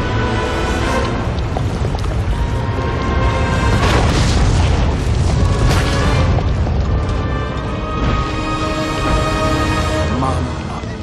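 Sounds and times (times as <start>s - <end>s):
dramatic music: 0.0s - 11.0s
deep booming and rumbling: 1.1s - 10.7s.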